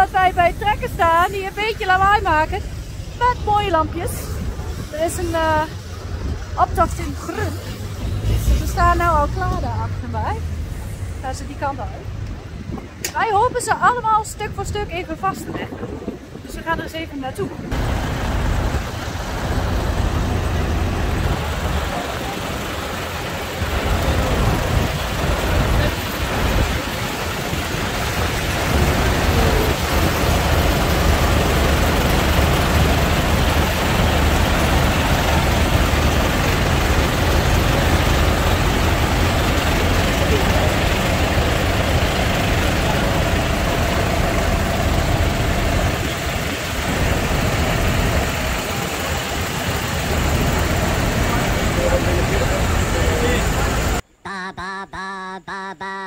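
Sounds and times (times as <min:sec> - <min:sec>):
tractor diesel engines idling: 0:00.0 - 0:15.6, 0:16.3 - 0:54.2.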